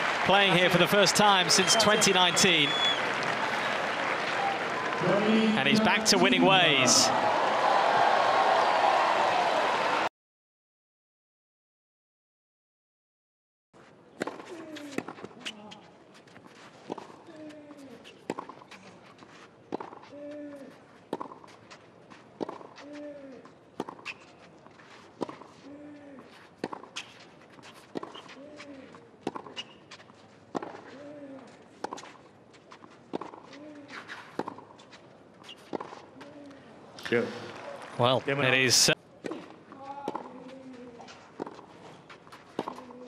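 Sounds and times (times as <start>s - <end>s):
racket hitting tennis ball: 39.2s - 40.6s, 42.3s - 43.0s.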